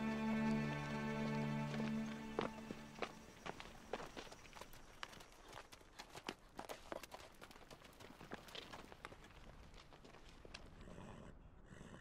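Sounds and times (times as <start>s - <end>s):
held music chord: 0.0s - 3.4s
hooves clopping on stony ground: 0.0s - 11.1s.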